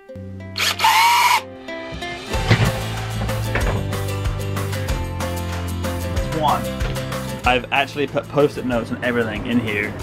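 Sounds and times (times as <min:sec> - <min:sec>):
cordless drill whirring: 0:00.6 - 0:01.4
music with a steady beat: 0:01.6 - 0:07.7.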